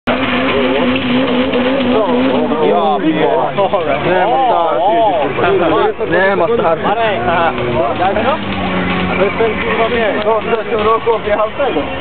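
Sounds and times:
car engine at high revs: 0:00.0 - 0:12.0.

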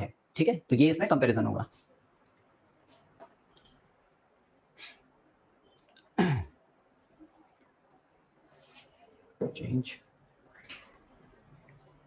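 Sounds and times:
man clearing his throat: 0:06.2 - 0:06.6.

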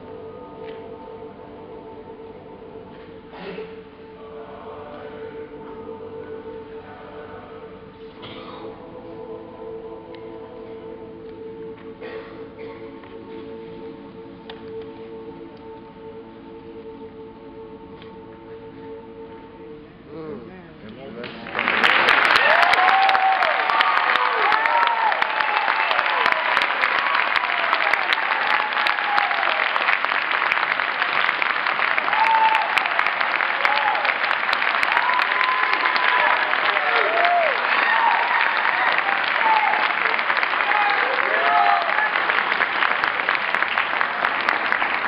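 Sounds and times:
audience applauding: 0:21.2 - 0:45.0
voices cheering: 0:21.6 - 0:30.1, 0:31.8 - 0:43.3.

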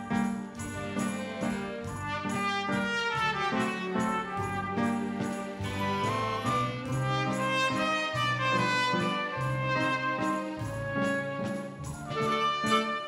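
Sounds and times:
live band accompaniment: 0:00.0 - 0:13.0
trumpet playing a melody: 0:00.0 - 0:13.0.

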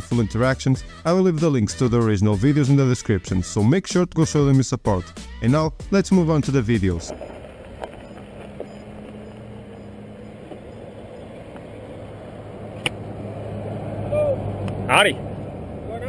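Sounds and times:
traffic engine hum: 0:06.1 - 0:16.0
vehicle passing: 0:06.2 - 0:16.0.

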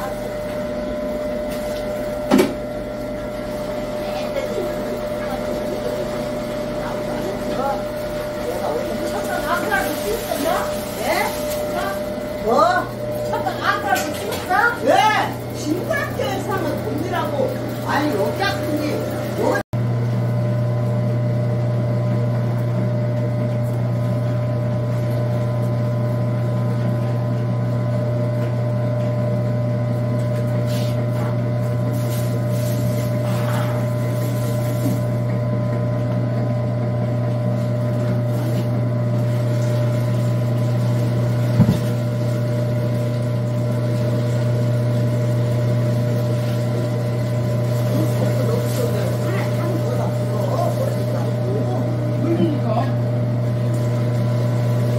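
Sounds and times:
food grinder motor humming: 0:00.0 - 0:54.9.

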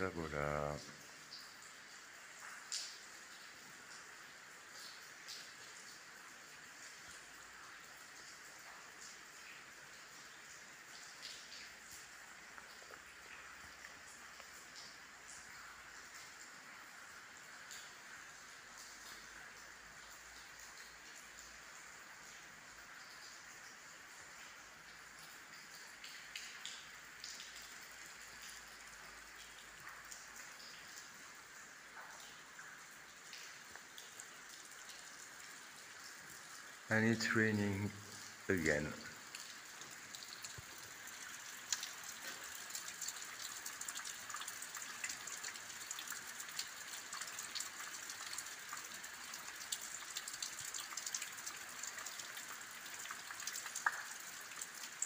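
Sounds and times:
light rain falling: 0:00.0 - 0:55.0
scattered raindrops: 0:00.0 - 0:55.0.

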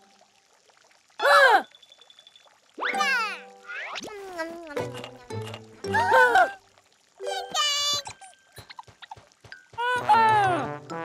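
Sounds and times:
background music score: 0:09.8 - 0:11.0.

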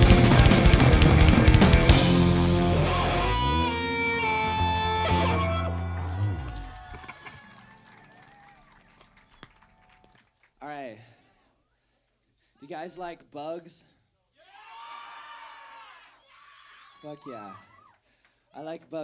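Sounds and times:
live rock band playing: 0:00.0 - 0:05.9.

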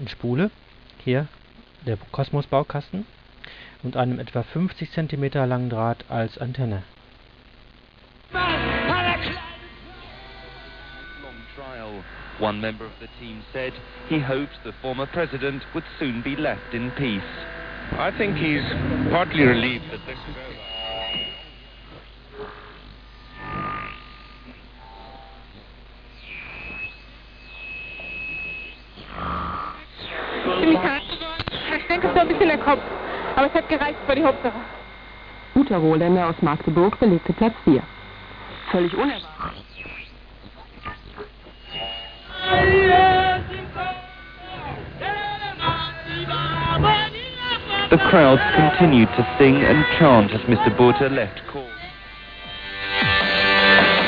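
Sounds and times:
noisy broadcast sound: 0:00.0 - 0:54.0
radio static hiss: 0:00.0 - 0:54.0
gliding radio whistles: 0:08.3 - 0:54.0.

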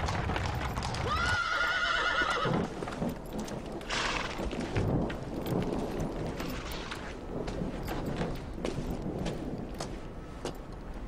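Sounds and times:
hooves clip-clopping: 0:00.0 - 0:11.0
horse whinnying: 0:01.0 - 0:02.7.

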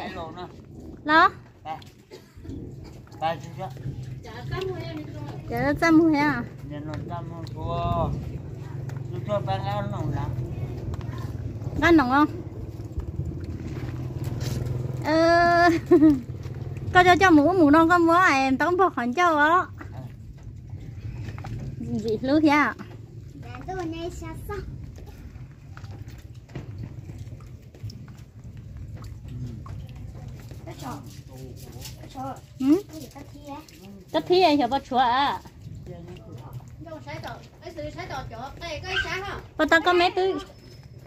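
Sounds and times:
steady low rumble: 0:00.0 - 0:30.7.

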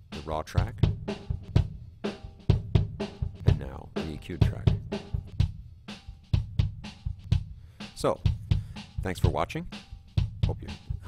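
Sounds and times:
kick drum: 0:00.6 - 0:03.8, 0:04.4 - 0:07.6, 0:08.2 - 0:11.0.

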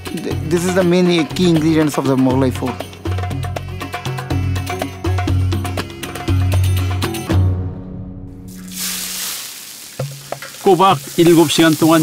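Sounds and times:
hot pan sizzling: 0:08.5 - 0:12.0.

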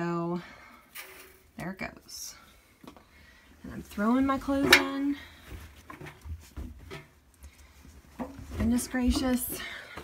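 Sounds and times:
clothes rustling and thudding: 0:03.6 - 0:10.0.

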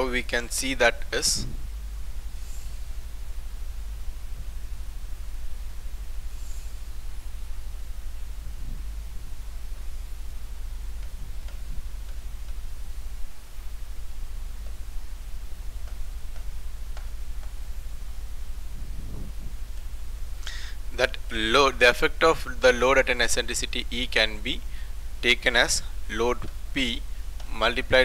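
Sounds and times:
background hiss: 0:00.0 - 0:28.0
low electrical hum: 0:00.0 - 0:28.0.

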